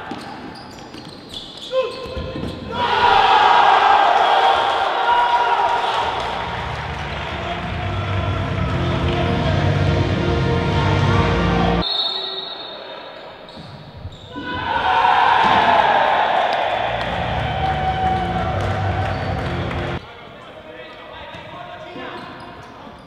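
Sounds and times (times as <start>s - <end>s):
crowd shouting and cheering: 2.6s - 13.3s, 14.3s - 20.0s
background music: 6.2s - 11.8s, 16.8s - 20.0s.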